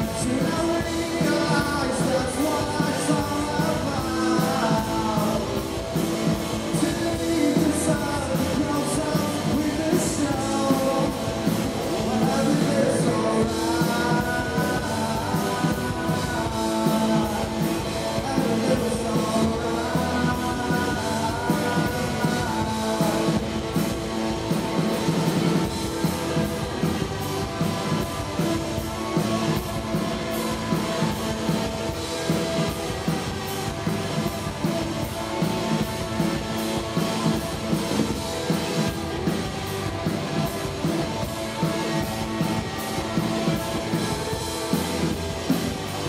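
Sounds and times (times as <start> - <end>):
drum kit: 0.0 - 46.0
electric guitars: 0.0 - 46.0.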